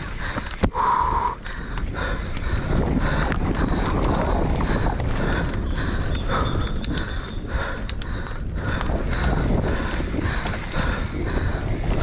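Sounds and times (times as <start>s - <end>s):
wind rushing over microphone: 0.0s - 12.0s.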